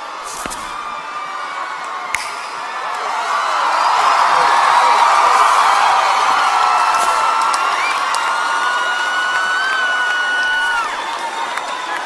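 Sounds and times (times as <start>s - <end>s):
crowd screaming and cheering: 0.0s - 12.0s.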